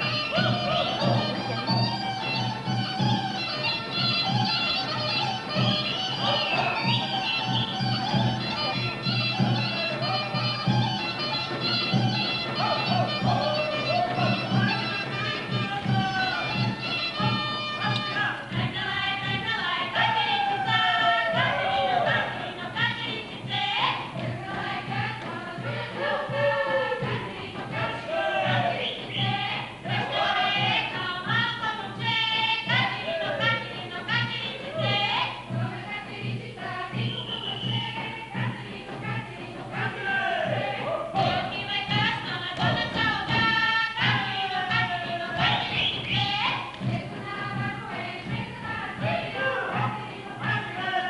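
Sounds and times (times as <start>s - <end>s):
folk dance music: 0.0s - 51.0s
group singing in chorus: 6.2s - 6.9s, 12.6s - 14.9s, 18.2s - 31.5s, 32.1s - 51.0s.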